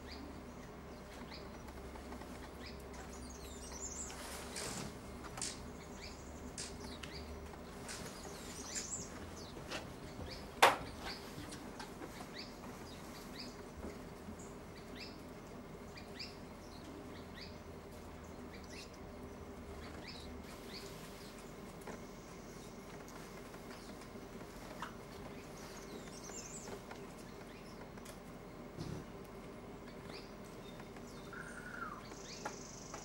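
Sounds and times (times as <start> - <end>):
downward-sweeping bird calls: 2.6 - 13.6, 29.8 - 33.0
high bird chirps: 31.2 - 33.0.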